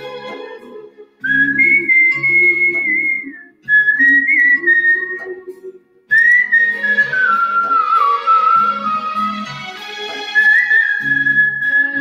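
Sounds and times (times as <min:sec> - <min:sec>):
soft instrumental backing track: 0:00.0 - 0:12.0
person whistling a melody: 0:01.2 - 0:09.3, 0:10.4 - 0:12.0.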